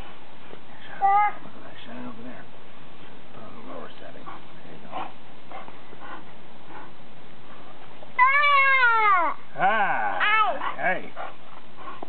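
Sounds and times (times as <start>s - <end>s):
young boy calling out: 8.2s - 9.4s.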